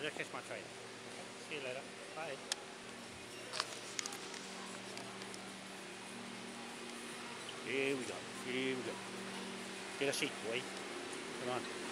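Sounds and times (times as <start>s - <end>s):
low machine hum: 0.0s - 11.9s.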